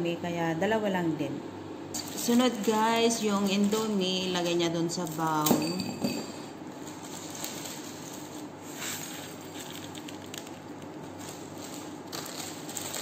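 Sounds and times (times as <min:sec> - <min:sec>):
plastic wrappers crinkling: 0:02.0 - 0:05.5, 0:06.7 - 0:13.0.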